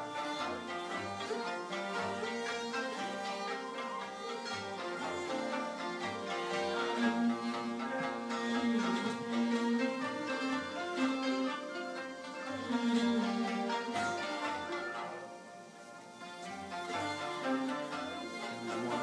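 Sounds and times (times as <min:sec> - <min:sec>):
bowed fiddles playing folk tune: 0:00.0 - 0:19.0.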